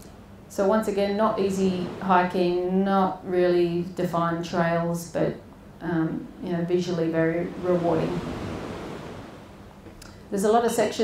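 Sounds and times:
woman speaking through a microphone: 0:00.6 - 0:08.2, 0:10.4 - 0:11.0.

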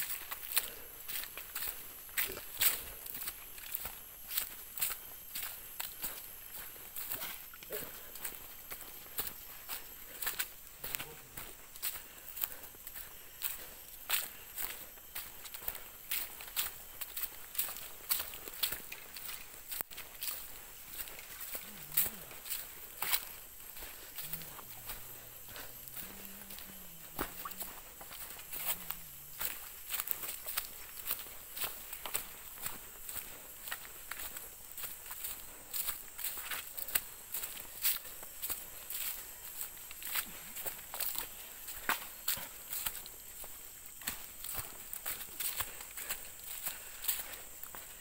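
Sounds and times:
footsteps crunching through dry leaves: 0:00.0 - 0:48.0.

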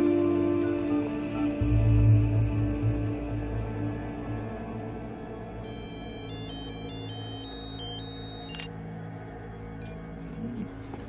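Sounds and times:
dramatic underscore music: 0:00.0 - 0:11.0
mobile phone electronic tones: 0:05.7 - 0:08.7
click: 0:08.5 - 0:08.7.

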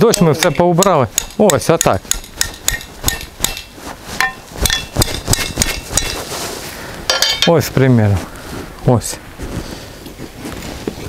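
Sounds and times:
hatchet knocking on steel: 0:00.0 - 0:06.2.

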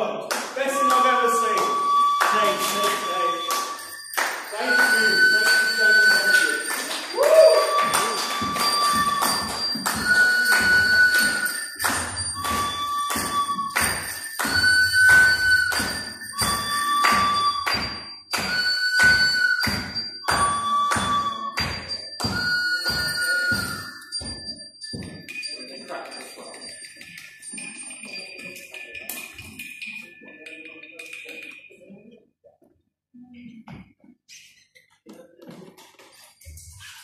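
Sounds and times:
held tone alternating pitch: 0:00.8 - 0:31.6.

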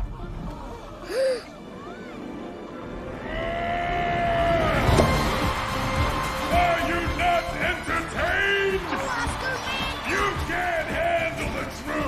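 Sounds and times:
sharp gasp: 0:01.0 - 0:01.6
orchestral film music: 0:01.5 - 0:12.0.

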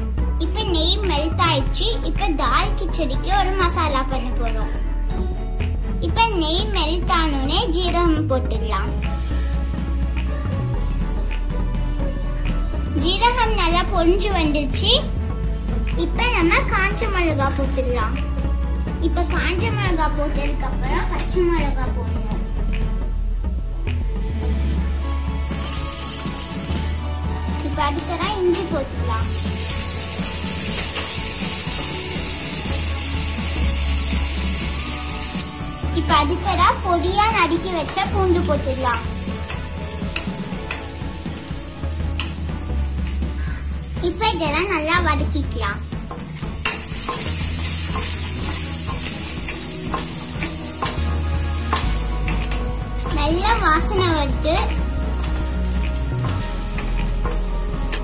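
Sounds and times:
hot oil sizzling: 0:25.2 - 0:58.0.

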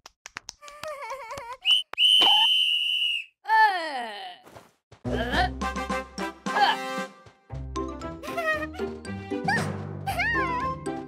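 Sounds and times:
high whistle with falling glide: 0:02.0 - 0:03.3.

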